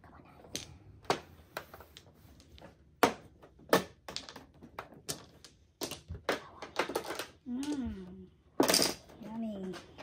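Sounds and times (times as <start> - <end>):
tiles clacking on table: 0.4 - 10.0
person murmuring: 7.4 - 8.3.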